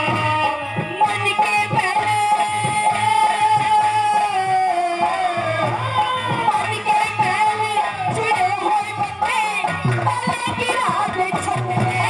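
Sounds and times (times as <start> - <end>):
steady drum beat: 0.0 - 12.0
woman singing into a microphone: 0.0 - 12.0.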